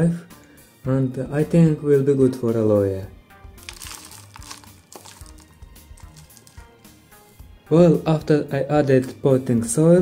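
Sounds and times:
quiet background music: 0.0 - 10.0
soil trickling into plastic pot: 3.6 - 6.7.

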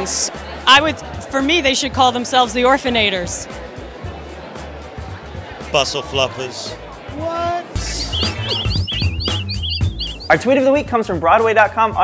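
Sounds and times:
quick high bird-like tweets: 7.8 - 10.4.

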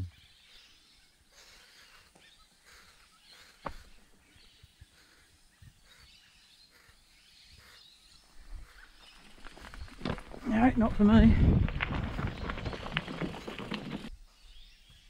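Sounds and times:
bike tyres crunching over stones: 9.0 - 14.1
bike knocking on rock: 9.6 - 14.1.

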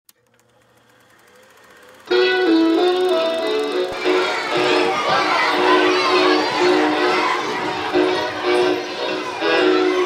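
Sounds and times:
click: 0.1 - 2.0
rapid mechanical clatter with hum: 0.1 - 2.1.

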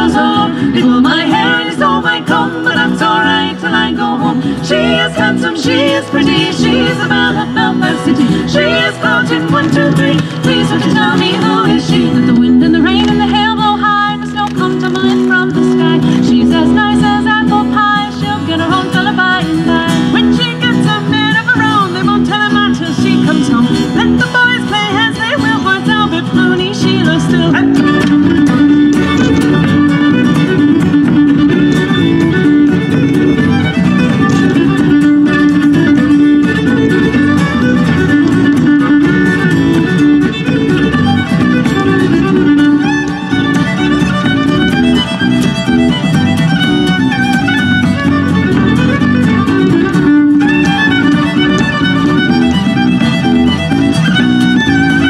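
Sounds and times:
fiddle melody: 0.0 - 55.0
strummed guitars: 0.0 - 55.0
frame drum: 27.8 - 55.0.

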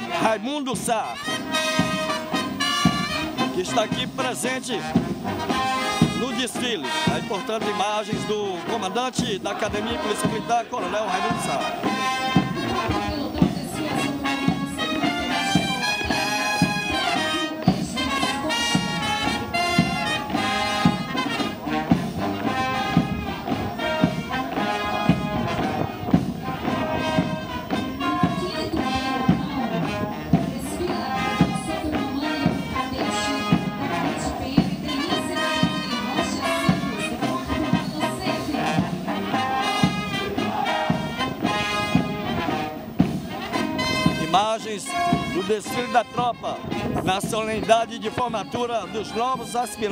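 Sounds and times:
brass band playing a march: 0.0 - 49.9
steady drum beat: 0.0 - 49.9.

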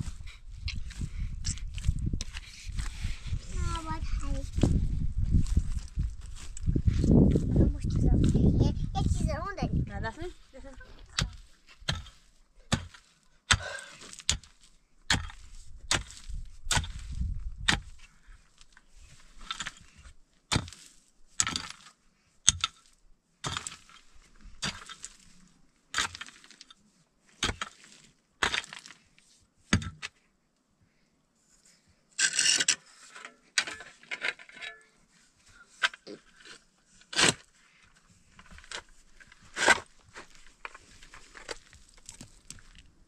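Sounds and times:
pickaxe striking rubble: 11.2 - 17.0, 20.5 - 20.8, 21.4 - 21.9, 22.5 - 24.0, 24.6 - 25.1, 25.9 - 26.5, 27.4 - 27.8, 28.4 - 29.0, 29.7 - 30.1
loose stones rattling: 27.4 - 29.0, 38.3 - 43.0.

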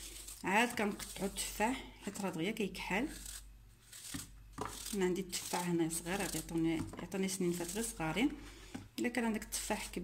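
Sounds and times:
knife slicing apple: 0.0 - 8.2.

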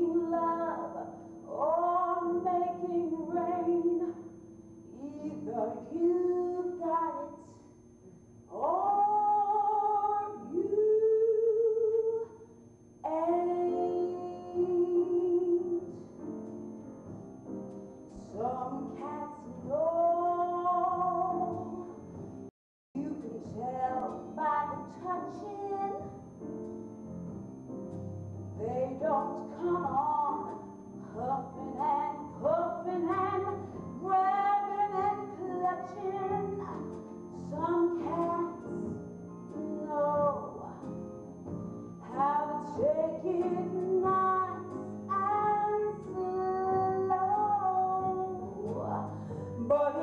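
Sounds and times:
woman singing: 0.0 - 4.3, 4.9 - 7.6, 8.5 - 12.3, 13.0 - 16.1, 18.1 - 22.0, 23.0 - 26.2, 28.6 - 41.0, 42.0 - 50.0
woman singing a long note: 13.0 - 16.0, 23.0 - 26.1.

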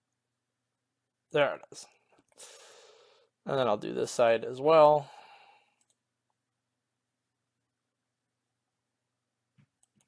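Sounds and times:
person speaking: 3.4 - 5.2.

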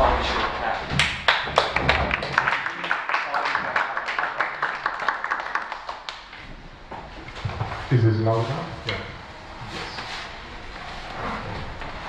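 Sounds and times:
audience applauding: 1.0 - 6.4.

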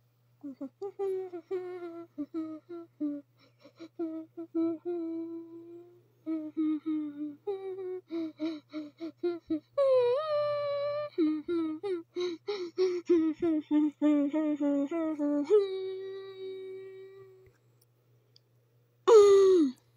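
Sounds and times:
person humming a bouncy tune: 0.4 - 17.6, 19.1 - 19.9.

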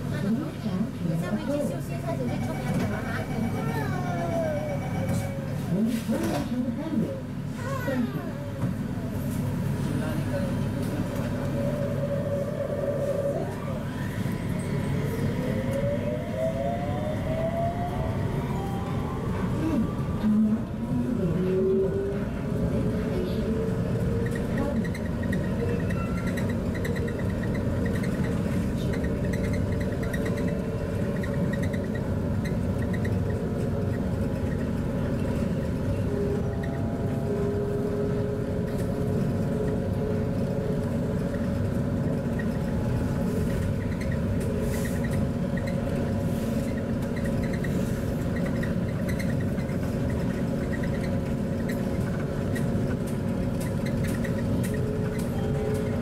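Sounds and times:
train tyres rumbling: 0.0 - 56.0.

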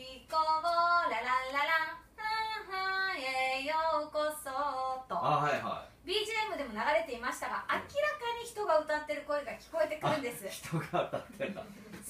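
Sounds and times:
woman singing unaccompanied: 0.0 - 5.2.

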